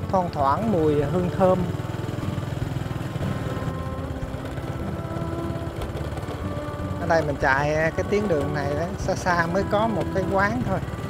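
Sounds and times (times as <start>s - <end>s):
motorbike engine cruising: 0.0s - 11.0s.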